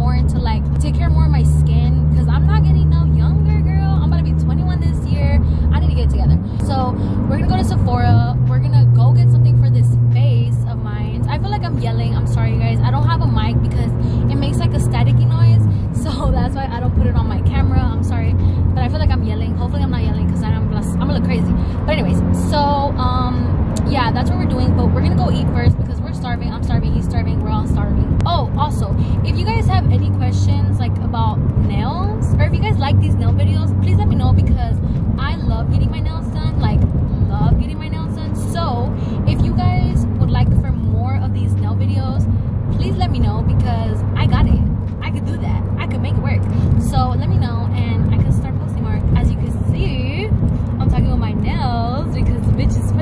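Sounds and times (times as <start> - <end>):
car road and engine rumble: 0.0 - 53.0
woman talking: 0.0 - 53.0.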